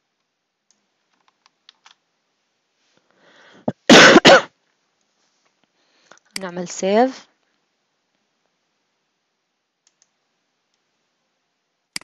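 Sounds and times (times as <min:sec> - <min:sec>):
person coughing: 0:03.6 - 0:04.5
mouse clicks: 0:09.8 - 0:10.8.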